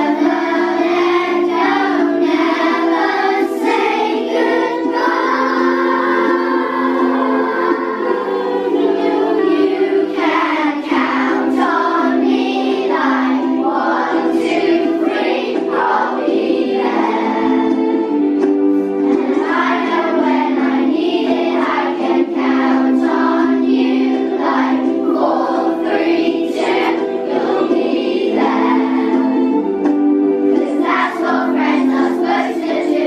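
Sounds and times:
children singing in unison: 0.0 - 33.0
musical accompaniment: 0.0 - 33.0.

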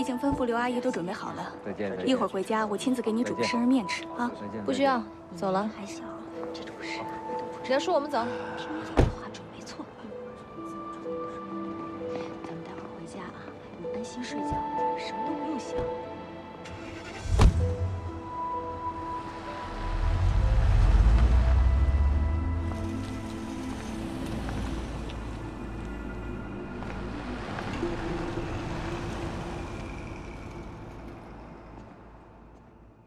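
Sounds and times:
background music: 0.0 - 33.0
car door shutting: 17.0 - 17.9
car engine driving past: 18.8 - 26.2, 26.8 - 32.6.

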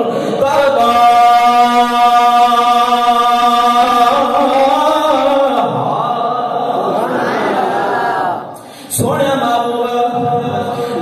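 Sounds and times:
man chanting into microphone: 0.0 - 7.0, 8.8 - 11.0.

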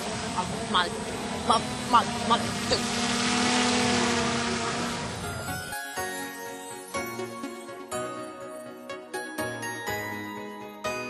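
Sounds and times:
bee buzzing past: 0.0 - 5.9.

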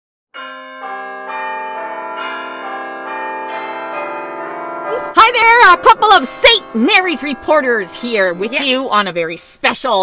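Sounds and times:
bells ringing in a peal: 0.4 - 9.1.

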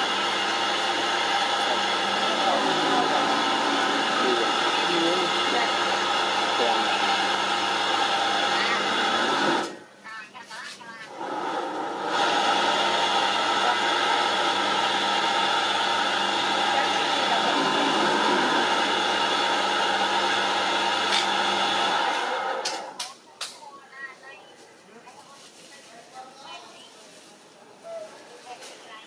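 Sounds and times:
motor-like drone: 0.0 - 9.8, 11.3 - 22.6.

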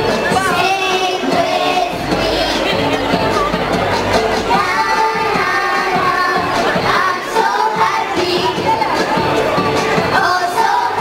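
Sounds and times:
music: 0.0 - 11.0
child singing into a microphone: 0.2 - 2.8, 4.5 - 9.0, 10.0 - 11.0.

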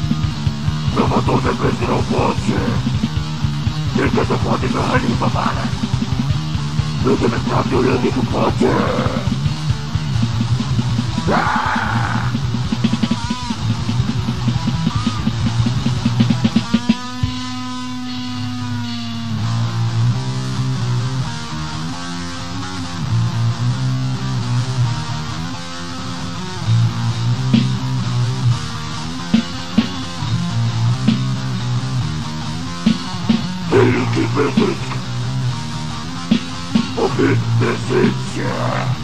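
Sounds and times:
distorted guitar riffing: 0.0 - 39.0
drums: 0.0 - 39.0.

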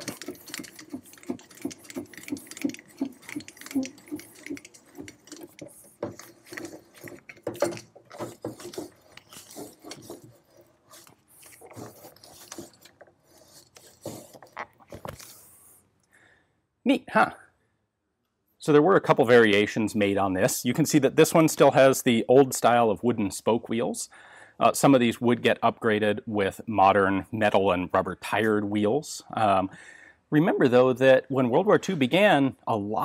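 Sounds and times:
gear mechanism clicking and rattling: 0.0 - 15.4.

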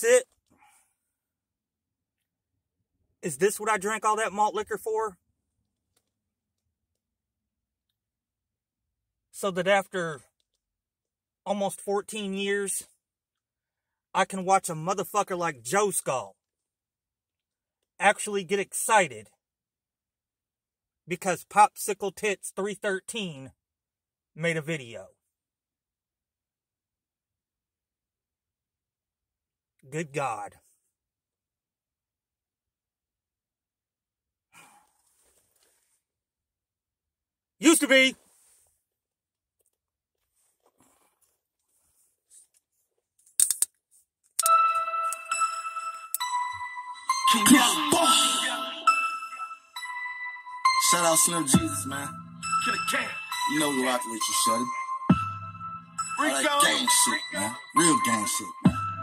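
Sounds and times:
man speaking: 0.0 - 0.3, 3.2 - 5.2, 9.4 - 10.2, 29.9 - 30.6, 37.6 - 38.2, 47.3 - 48.9, 50.8 - 54.7, 56.2 - 58.6.

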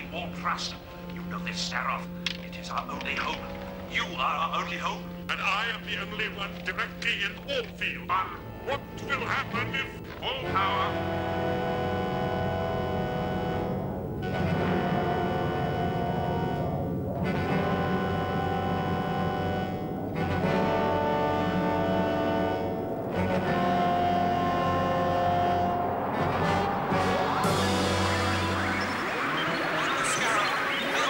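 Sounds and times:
dramatic orchestral chords: 8.1 - 31.0
low drone: 10.1 - 31.0.

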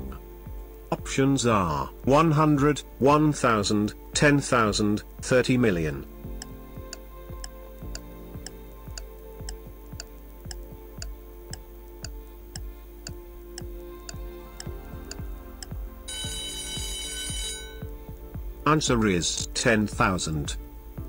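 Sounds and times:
background music: 0.0 - 21.0
countdown timer ticking: 6.3 - 18.8
alarm clock ringing: 16.1 - 17.9.

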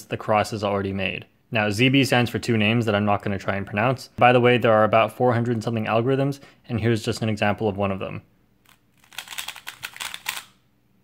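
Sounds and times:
puzzle cube plastic clicks: 8.6 - 10.6.

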